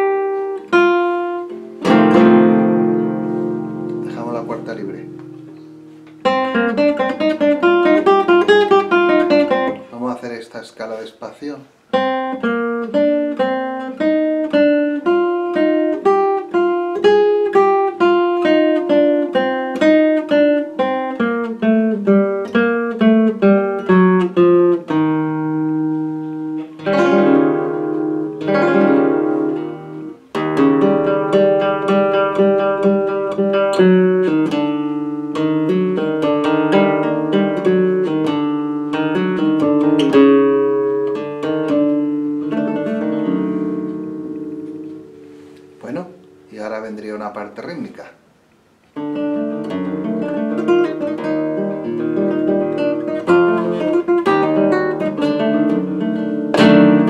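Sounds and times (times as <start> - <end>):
flamenco guitar playing: 0.0 - 10.4, 11.7 - 57.0.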